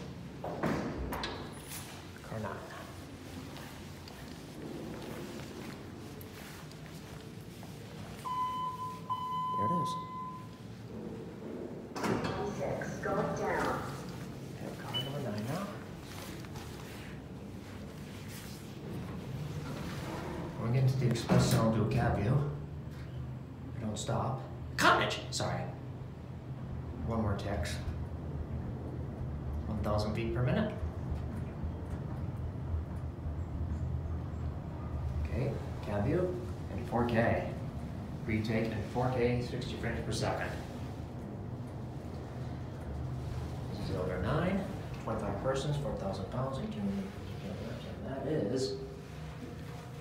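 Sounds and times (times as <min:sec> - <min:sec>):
elevator cab rumbling: 0:01.0 - 0:23.8, 0:25.8 - 0:50.0
elevator doors sliding open: 0:07.3 - 0:18.0, 0:18.7 - 0:22.0
elevator arrival chime: 0:08.2 - 0:11.0, 0:14.9 - 0:15.2.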